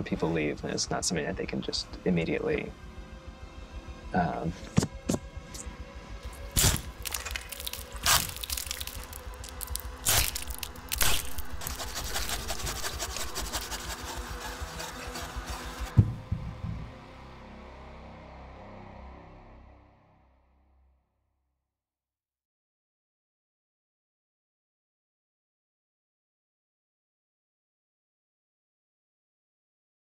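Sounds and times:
dark film score: 0.0s - 21.0s
low drone: 0.0s - 21.0s
wooden knocks and cracks: 6.6s - 12.8s, 15.9s - 17.0s.

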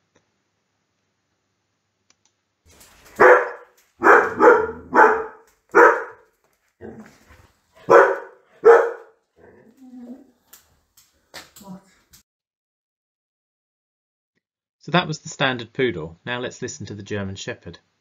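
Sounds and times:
dog barking: 3.1s - 6.2s, 7.8s - 9.6s.

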